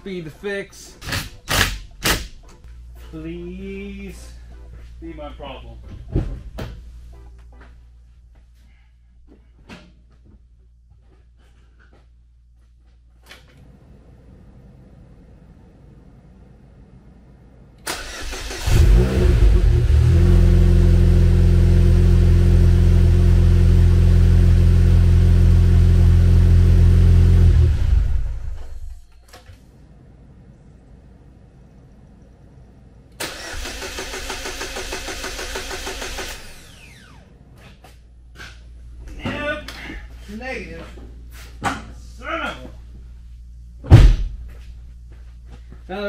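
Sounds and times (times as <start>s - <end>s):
car engine cranking: 17.8s - 22.2s, 33.2s - 37.2s
car engine running: 18.6s - 28.9s.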